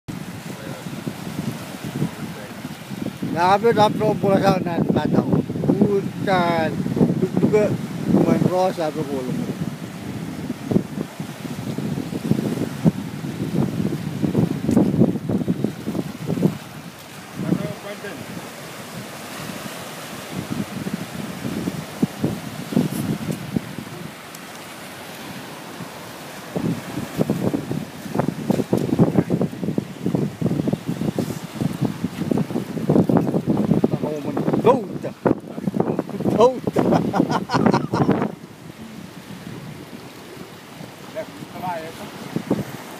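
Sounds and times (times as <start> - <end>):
small waves on rocky shore: 0.1 - 42.9
wind buffeting microphone: 0.1 - 42.9
people talking: 3.4 - 9.5, 17.4 - 18.2, 33.9 - 36.6, 41.1 - 42.2.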